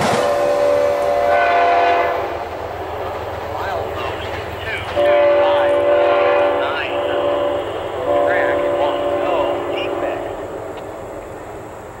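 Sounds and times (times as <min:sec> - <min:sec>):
distant locomotive air horn: 0:00.0 - 0:02.6, 0:04.8 - 0:10.6.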